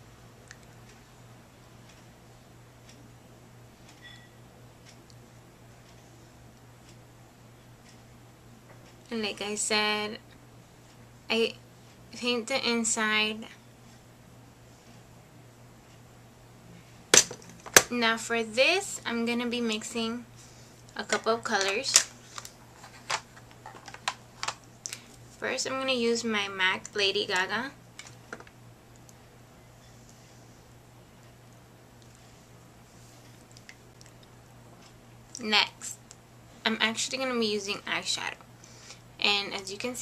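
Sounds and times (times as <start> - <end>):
steady low hum: 0.0 - 40.0
faint high beep: 4.0 - 4.4
plastic cases clicking: 21.1 - 24.6.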